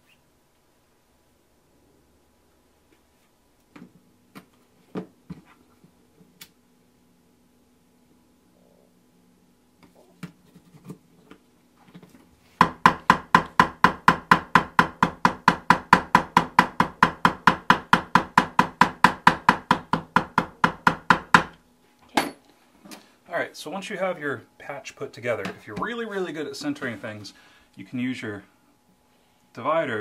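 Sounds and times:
mallet striking leather punch: 0:12.6 - 0:21.6.

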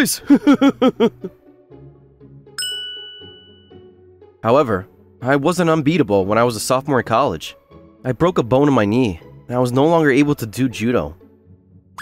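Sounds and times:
soft background music: 0:00.0 - 0:12.0
bright bell ding: 0:02.6 - 0:03.8.

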